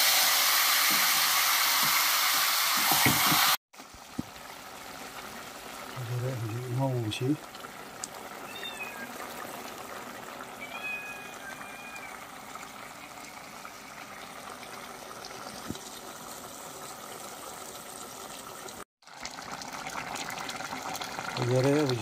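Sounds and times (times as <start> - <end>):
curry simmering and bubbling: 3.8 - 22.0.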